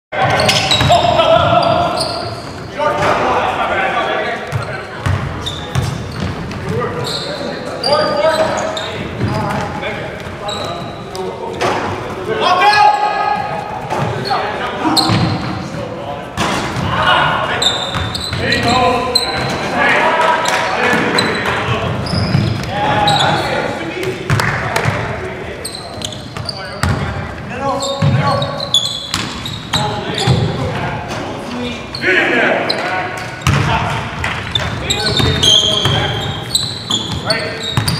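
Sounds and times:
players calling out: 0:00.2 - 0:37.9
basketball bouncing on court: 0:00.3 - 0:01.8, 0:04.5 - 0:06.8, 0:17.8 - 0:18.7, 0:24.0 - 0:25.1, 0:26.4 - 0:27.2, 0:28.0 - 0:28.2, 0:29.1 - 0:30.6, 0:33.4 - 0:36.2, 0:37.0 - 0:37.9.

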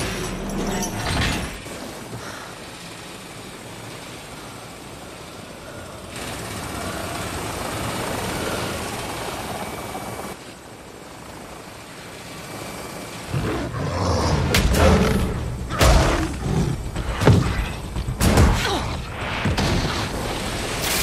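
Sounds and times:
steady rumbling ambient noise: 0:00.0 - 0:21.0.

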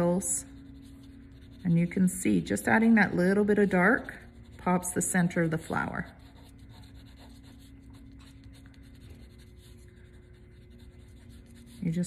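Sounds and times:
pencil scratching on paper: 0:00.0 - 0:02.5, 0:03.8 - 0:12.0.

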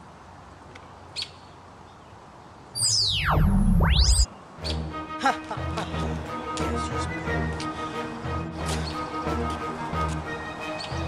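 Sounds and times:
bird chirp: 0:02.8 - 0:04.8.

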